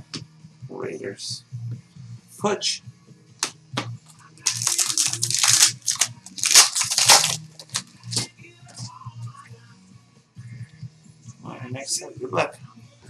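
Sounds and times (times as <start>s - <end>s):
wrapper tearing and crinkling: 4.4s - 8.2s.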